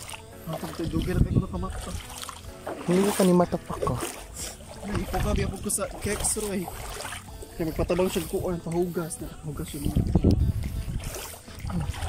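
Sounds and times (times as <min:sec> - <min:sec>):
sloshing of shallow water: 0:00.0 - 0:12.0
people talking: 0:00.5 - 0:02.0, 0:04.8 - 0:06.7, 0:07.6 - 0:10.4.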